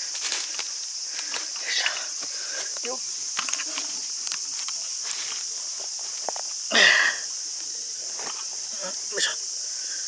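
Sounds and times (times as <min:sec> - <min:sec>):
rustling dry leaves and twigs: 0:00.0 - 0:06.7
cicadas chorus: 0:00.0 - 0:10.0.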